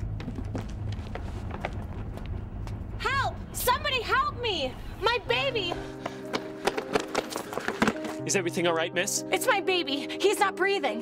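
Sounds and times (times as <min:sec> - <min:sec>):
running footsteps on pavement: 0:00.0 - 0:03.0, 0:05.4 - 0:08.3
soft music score: 0:05.3 - 0:11.0.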